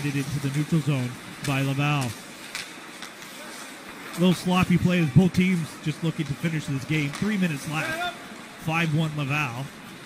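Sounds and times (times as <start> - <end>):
skates hissing on ice: 0.0 - 8.5.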